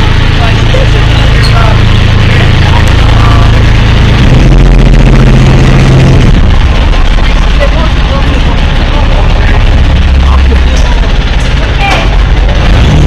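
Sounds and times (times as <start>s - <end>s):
small boat motor running: 0.0s - 13.0s.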